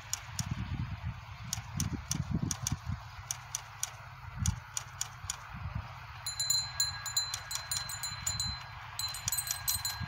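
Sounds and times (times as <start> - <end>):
wind rumble on microphone: 0.0 - 3.3, 4.2 - 10.0
metal chimes tinkling: 6.2 - 10.0.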